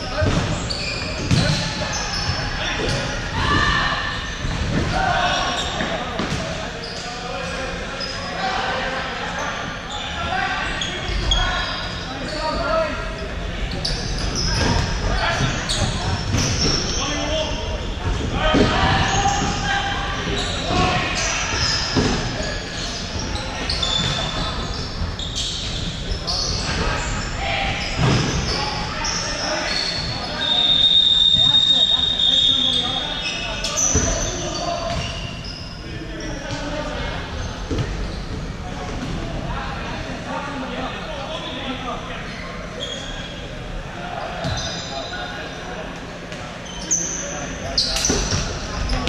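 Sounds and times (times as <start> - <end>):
players' voices calling: 0.0 - 49.0.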